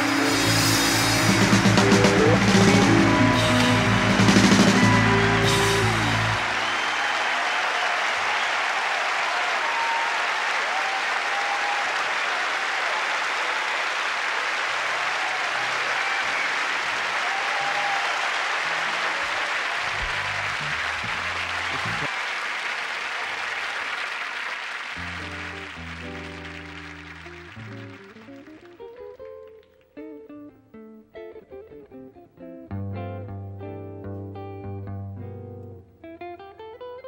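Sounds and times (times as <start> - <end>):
bass and guitar notes: 0.0 - 6.7, 19.9 - 22.1, 25.0 - 36.2
jazz music: 0.0 - 7.0, 19.9 - 22.1, 25.0 - 28.9
audience applauding: 0.0 - 29.9.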